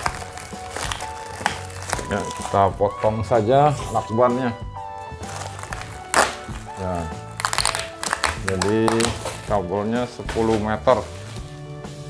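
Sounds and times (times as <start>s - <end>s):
packing tape ripping: 0.0s - 2.8s, 5.1s - 9.6s, 10.2s - 11.7s
background music with singing: 0.0s - 12.0s
tape crackling: 0.0s - 12.0s.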